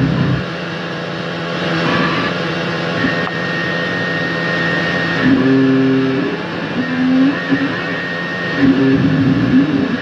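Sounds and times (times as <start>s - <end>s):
low hum: 0.0s - 10.0s
steady high tone: 1.6s - 10.0s.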